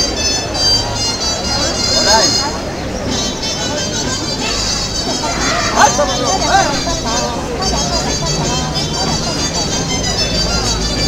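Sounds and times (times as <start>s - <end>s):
folk dance music: 0.0s - 11.0s
people talking: 0.0s - 11.0s.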